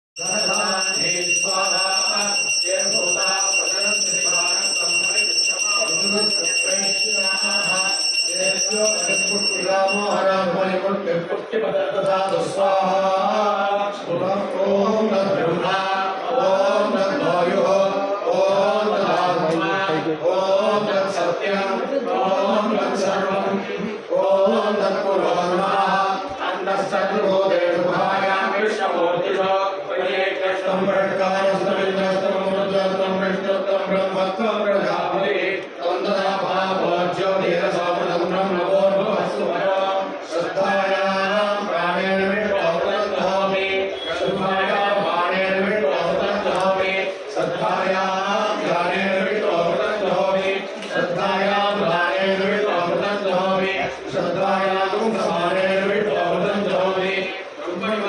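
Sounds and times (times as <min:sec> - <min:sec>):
men chanting into microphones: 0:00.2 - 0:58.0.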